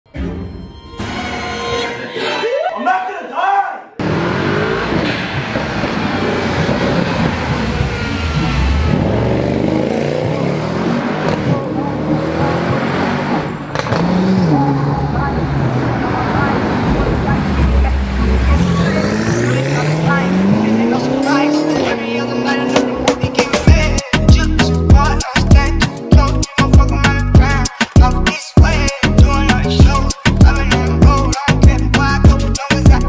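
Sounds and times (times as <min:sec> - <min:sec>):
car engine revving and accelerating: 0:04.0 - 0:23.7.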